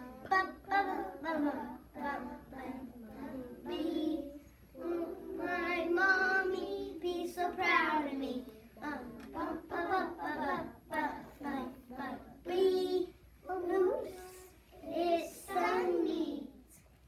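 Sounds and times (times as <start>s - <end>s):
young child singing: 0.0s - 16.8s.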